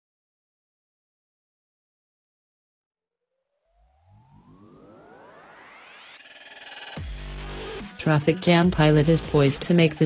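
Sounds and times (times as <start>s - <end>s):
synthesized riser tones gliding upward: 3.4s - 8.0s.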